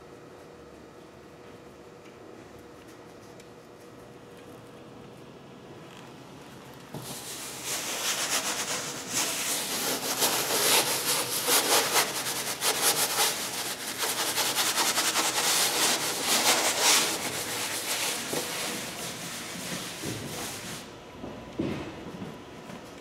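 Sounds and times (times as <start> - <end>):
cloth scrubbing on a wall: 7.0 - 20.9.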